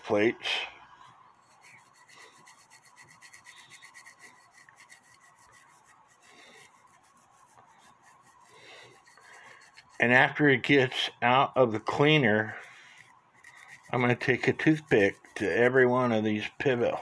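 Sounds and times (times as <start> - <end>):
brush scrubbing metal plate: 1.3 - 11.1, 11.8 - 17.0.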